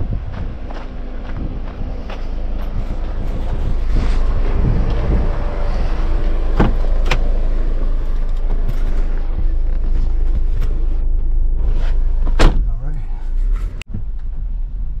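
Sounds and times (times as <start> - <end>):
car engine running: 0.0 - 15.0.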